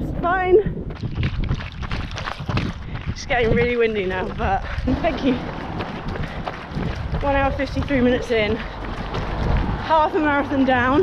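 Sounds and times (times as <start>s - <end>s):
running footsteps: 0.0s - 11.0s
wind buffeting microphone: 0.0s - 11.0s.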